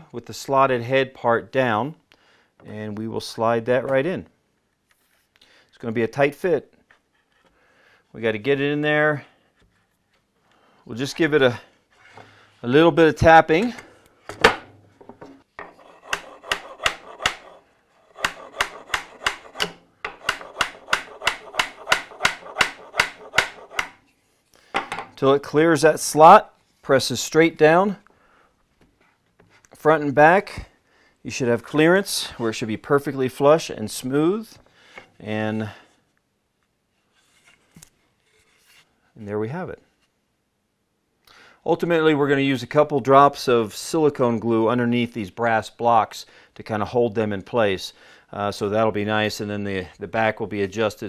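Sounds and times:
hands rubbing wood: 15.6s - 24.4s
small hammer tapping wood: 18.2s - 24.0s.

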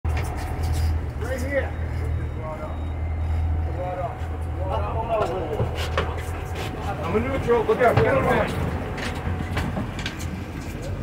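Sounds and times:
boat motor rumbling: 0.1s - 11.0s.

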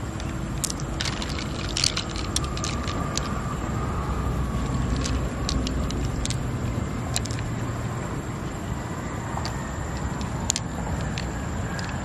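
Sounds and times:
pearls clicking together: 0.0s - 8.0s, 9.3s - 12.0s
steady low rumble: 0.0s - 12.0s.

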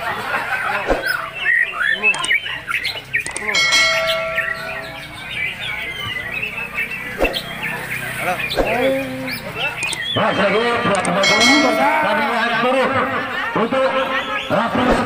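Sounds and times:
murmur of voices: 0.0s - 15.0s
songbirds singing and chirping: 0.0s - 15.0s.

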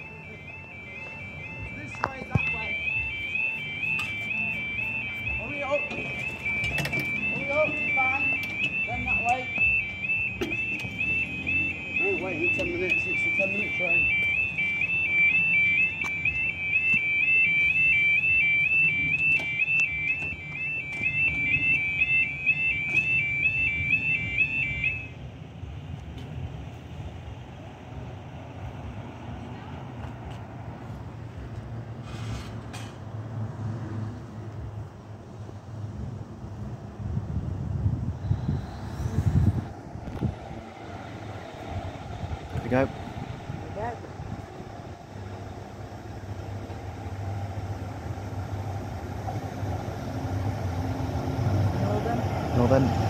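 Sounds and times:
level crossing alarm warbling: 0.0s - 25.2s.

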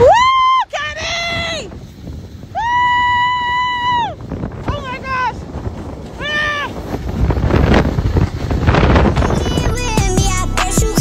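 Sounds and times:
children screaming: 0.0s - 1.7s, 2.5s - 4.3s.

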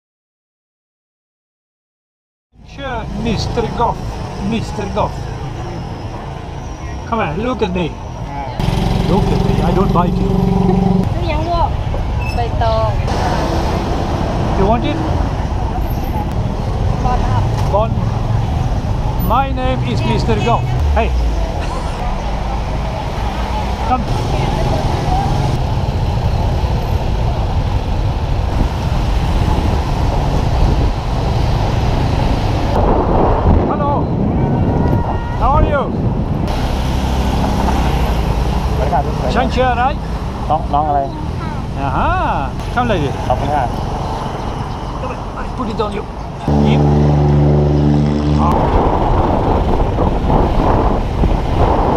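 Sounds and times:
street traffic rumble: 2.5s - 51.9s
voices: 2.7s - 27.8s, 38.6s - 48.7s.

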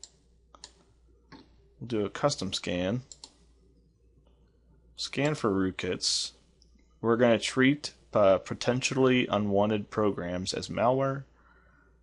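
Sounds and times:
computer mouse click: 0.0s - 1.5s, 3.1s - 3.4s
low room hum: 0.0s - 12.0s.

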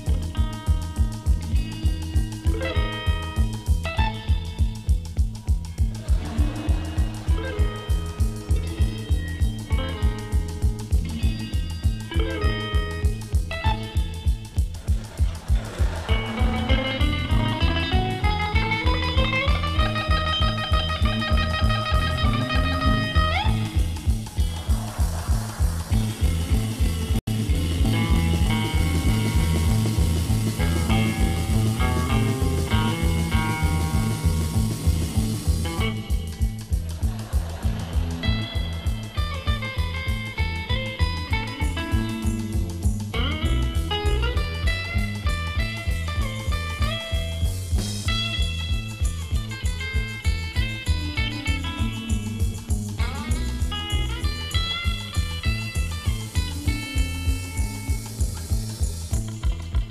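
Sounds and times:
electric guitar duet: 0.0s - 59.9s
steady low beat: 0.0s - 59.9s.

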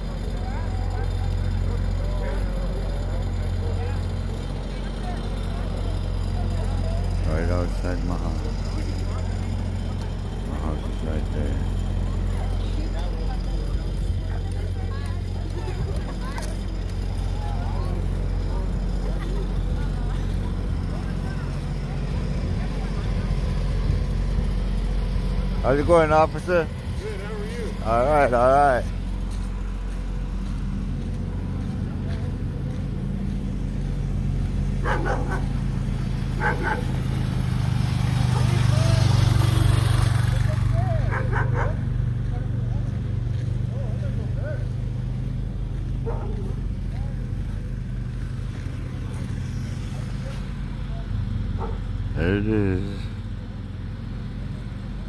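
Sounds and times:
vehicle engine running at low revs: 0.0s - 55.0s.

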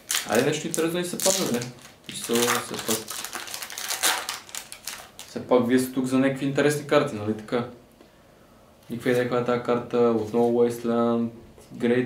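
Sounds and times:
foil wrapper crinkling and tearing: 0.0s - 5.4s.

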